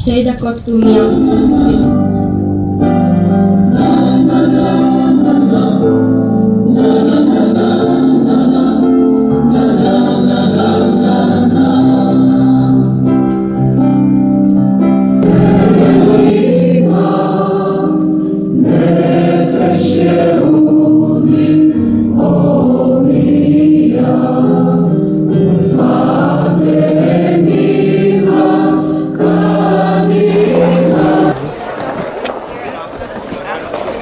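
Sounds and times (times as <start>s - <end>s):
choir singing slow song: 0.8s - 13.7s, 15.2s - 32.1s.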